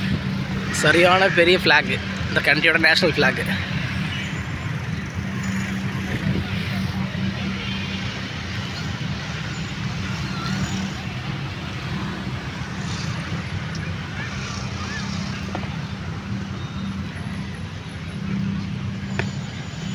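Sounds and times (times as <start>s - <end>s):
passing vehicles rumbling: 0.0s - 19.9s.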